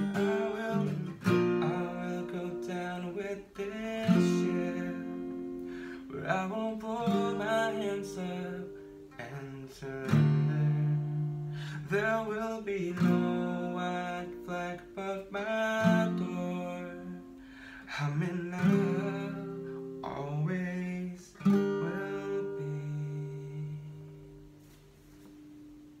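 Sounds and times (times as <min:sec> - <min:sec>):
man singing: 0:00.0 - 0:24.5
acoustic guitar strumming: 0:00.0 - 0:26.0.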